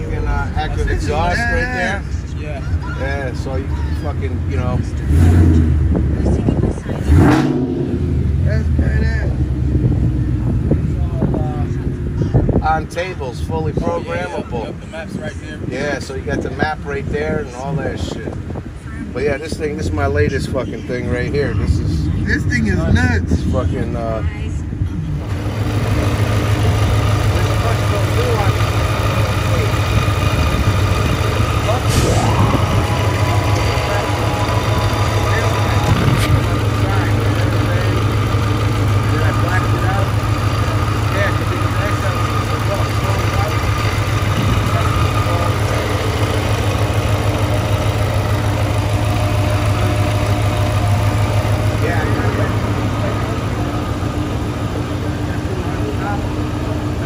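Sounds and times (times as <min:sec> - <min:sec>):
truck engine idling: 0:00.0 - 0:57.0.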